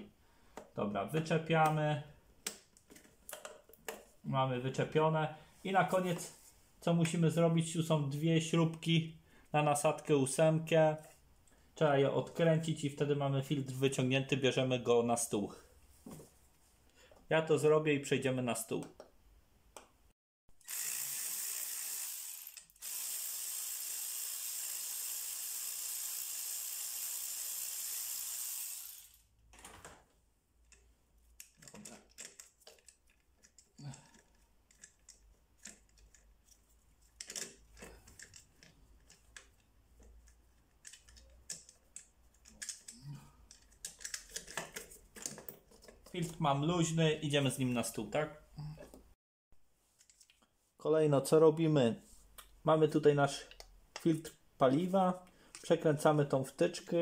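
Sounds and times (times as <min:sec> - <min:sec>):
ratchet wrench clicking rapidly: 0:20.6 - 0:29.2
hands handling metal part: 0:30.6 - 0:46.4.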